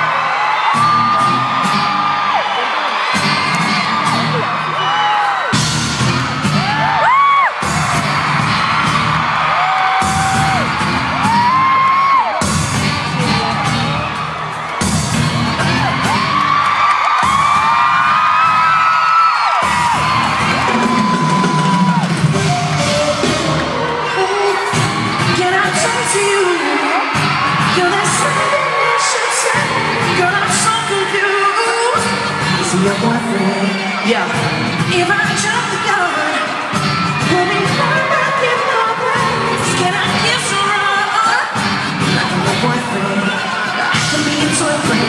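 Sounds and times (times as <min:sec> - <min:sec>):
fans screaming: 0:00.0 - 0:45.0
loud live pop music: 0:00.0 - 0:45.0.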